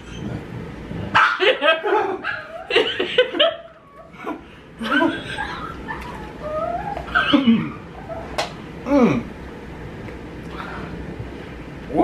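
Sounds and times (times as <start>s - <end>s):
person laughing: 1.4s - 5.9s.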